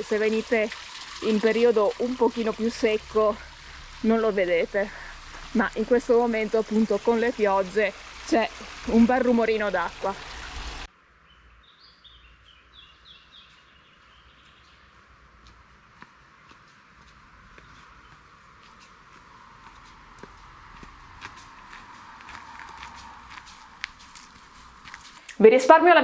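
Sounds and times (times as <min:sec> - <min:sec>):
bird chirping: 0:11.2 - 0:15.1
footsteps on gravel: 0:13.0 - 0:25.3.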